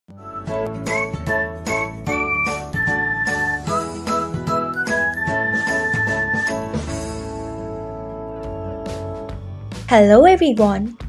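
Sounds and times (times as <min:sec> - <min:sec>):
upbeat intro music: 0:00.1 - 0:11.0.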